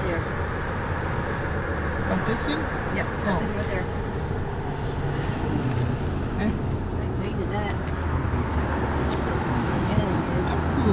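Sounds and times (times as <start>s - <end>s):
car road and engine hum: 0.0s - 10.9s.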